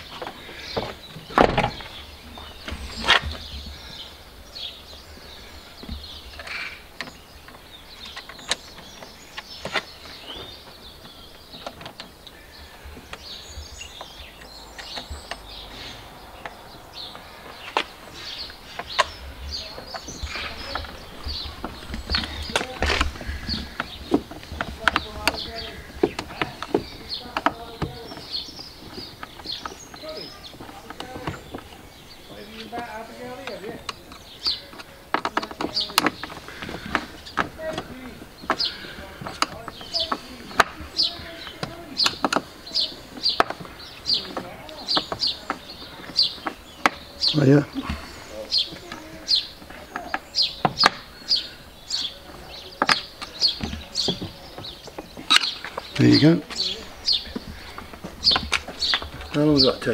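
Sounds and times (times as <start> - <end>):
birds chirping: 0.0 - 59.9.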